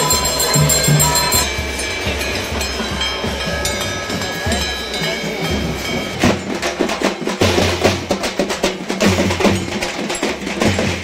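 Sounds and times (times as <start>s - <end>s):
thin steady ringing tones: 0.0s - 6.4s
festival crowd din: 0.0s - 11.0s
music: 0.0s - 11.0s.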